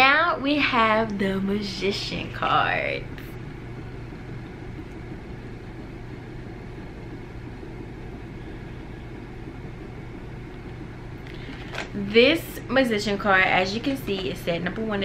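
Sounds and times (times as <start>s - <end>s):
motor humming with hiss: 1.0s - 15.0s.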